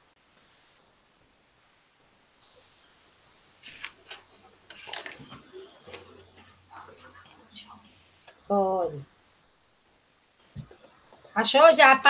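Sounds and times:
book pages rustling: 3.6s - 7.5s.

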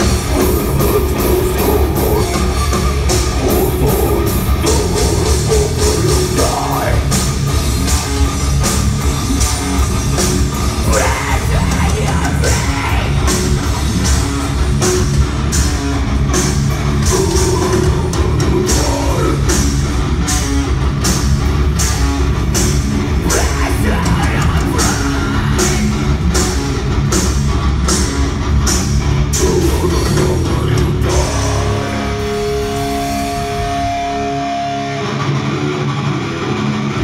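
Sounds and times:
drum kit: 0.0s - 35.4s
distorted electric guitars: 0.0s - 37.0s.

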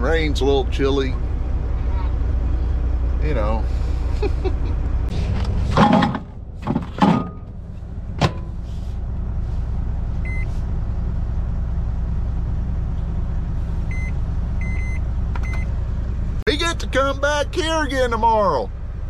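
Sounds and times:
steady low drone: 0.0s - 16.4s.

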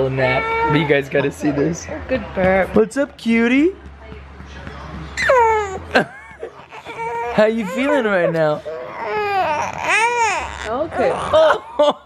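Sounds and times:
infant crying: 0.0s - 1.4s, 5.2s - 6.0s, 6.6s - 11.8s.

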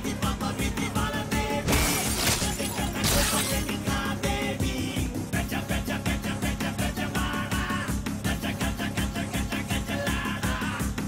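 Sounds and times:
loud crashing hits: 1.6s - 3.7s
film music with driving beat: 2.5s - 11.0s.

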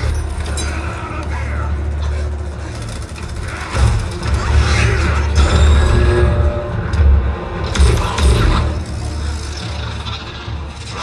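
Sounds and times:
action film soundtrack: 0.0s - 11.0s.

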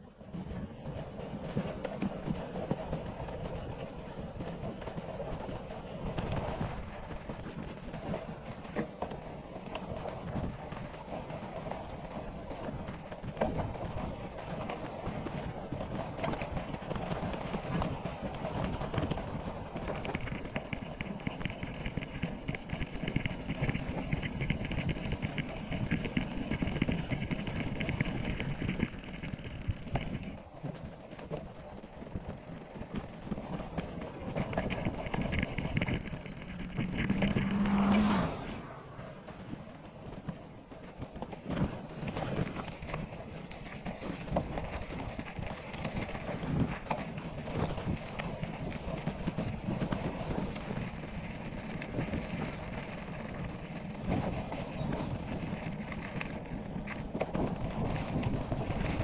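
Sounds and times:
bike rattling: 0.0s - 59.0s
bike tyres crunching on dirt: 18.6s - 39.8s, 41.3s - 59.0s
wind on microphone: 31.2s - 59.0s.

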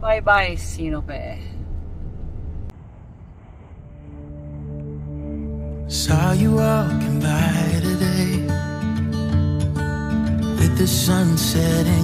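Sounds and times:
outdoor background rumble: 0.0s - 8.4s.

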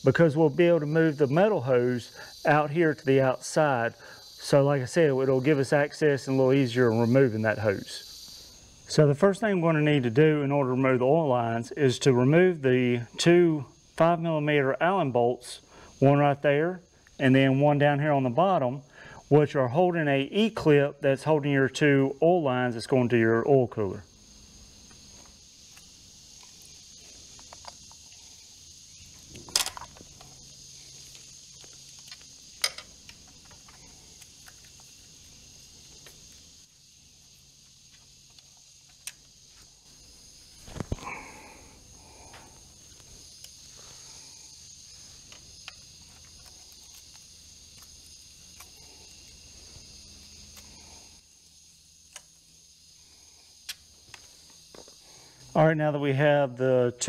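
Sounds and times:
faint high hiss: 0.0s - 57.0s.

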